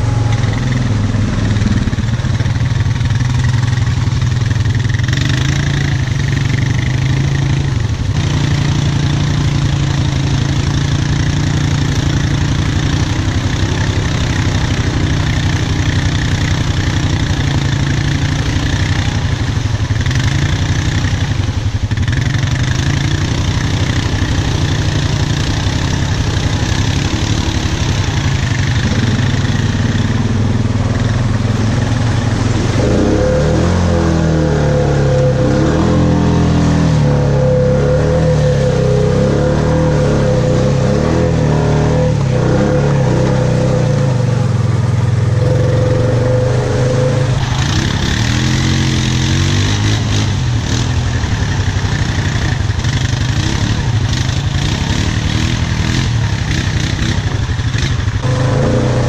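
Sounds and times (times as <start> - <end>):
quad bike engine revving: 0.0 - 59.0.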